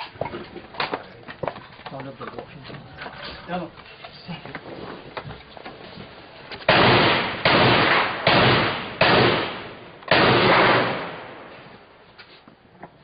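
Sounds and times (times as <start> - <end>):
gunshots with echo: 6.7 - 11.6.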